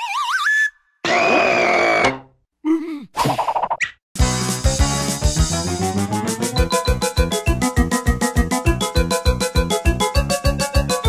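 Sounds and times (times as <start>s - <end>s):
cartoon wobbling whistle rising: 0.0s - 2.1s.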